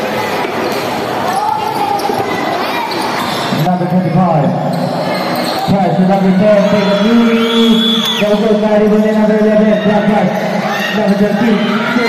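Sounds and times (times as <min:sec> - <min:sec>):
echoing game noise in hall: 0:00.0 - 0:12.0.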